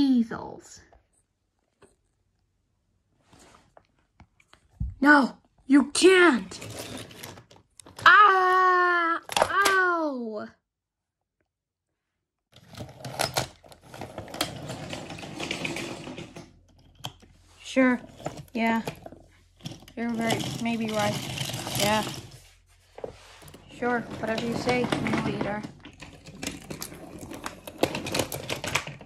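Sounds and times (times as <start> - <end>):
toy trains clacking on wooden track: 13.0 - 17.1, 18.1 - 22.4, 24.0 - 29.0.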